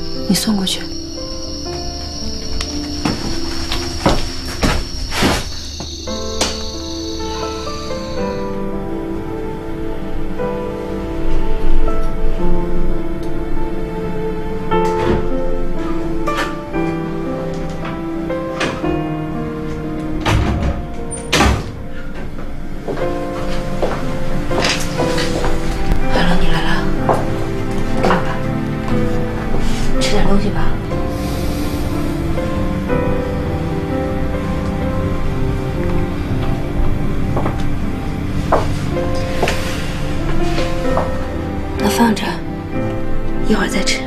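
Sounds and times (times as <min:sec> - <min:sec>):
background music with held notes: 0:00.0 - 0:44.0
sustained background score: 0:00.0 - 0:44.0
swishing noise sweeps: 0:31.0 - 0:34.4.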